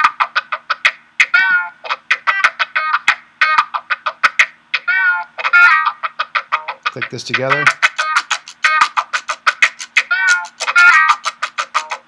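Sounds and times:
picked guitar notes: 0:00.0 - 0:12.0.

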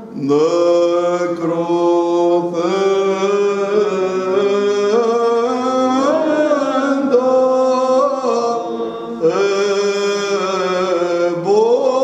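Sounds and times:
person chanting: 0:00.0 - 0:12.0.

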